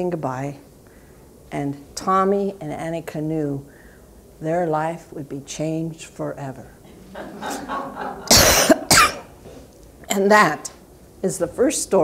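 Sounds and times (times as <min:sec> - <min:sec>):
woman coughing: 0:08.2 - 0:09.4.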